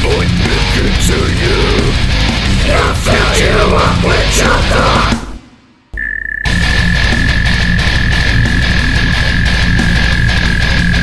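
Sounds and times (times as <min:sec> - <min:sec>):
death metal music: 0:00.0 - 0:11.0
high-pitched steady tone: 0:06.0 - 0:11.0.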